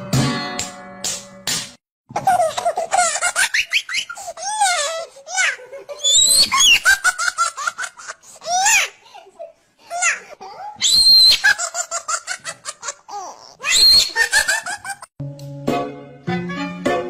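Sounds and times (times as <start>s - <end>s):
high-pitched giggling laughter: 2.1s - 9.0s, 9.9s - 15.1s.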